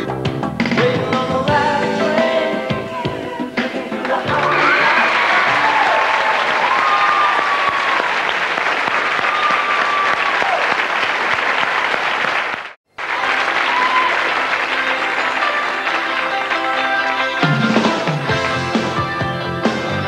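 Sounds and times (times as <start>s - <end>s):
song music: 0.0s - 6.0s, 13.0s - 20.0s
audience applauding: 4.0s - 19.1s.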